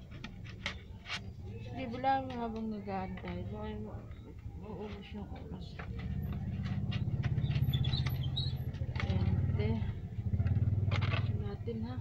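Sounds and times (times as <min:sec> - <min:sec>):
vehicle engine idling: 0:04.1 - 0:12.0.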